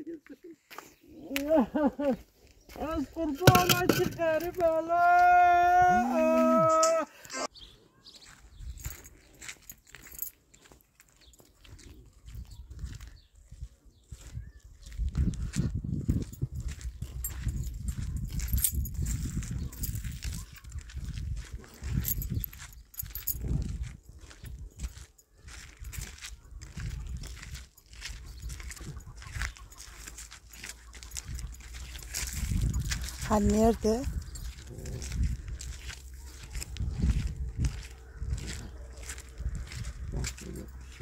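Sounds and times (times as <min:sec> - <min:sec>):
footsteps on paving stones: 0:00.1 - 0:06.1, 0:07.5 - 0:41.0
wind buffeting microphone: 0:08.5 - 0:09.0, 0:11.7 - 0:29.8, 0:31.0 - 0:41.0.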